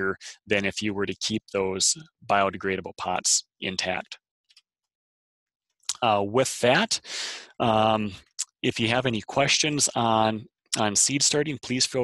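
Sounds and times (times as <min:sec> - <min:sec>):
man speaking: 0:00.0 - 0:04.2, 0:05.9 - 0:12.0.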